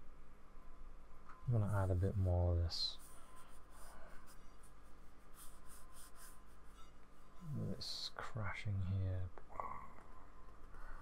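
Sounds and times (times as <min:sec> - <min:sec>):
paintbrush scratching on paper: 0:01.6 - 0:08.1.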